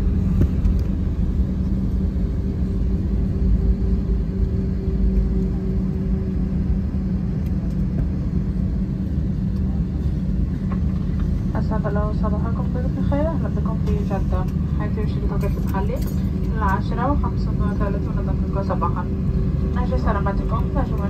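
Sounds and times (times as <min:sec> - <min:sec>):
aircraft engines rumbling: 0:00.0 - 0:21.0
constant hum: 0:00.0 - 0:21.0.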